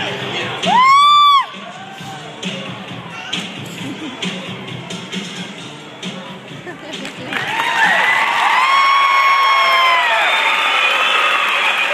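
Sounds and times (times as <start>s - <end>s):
high-pitched whoops: 0.6s - 2.1s, 7.5s - 11.9s
audience cheering and screaming: 0.6s - 2.3s, 7.3s - 11.9s
applause: 7.0s - 11.9s.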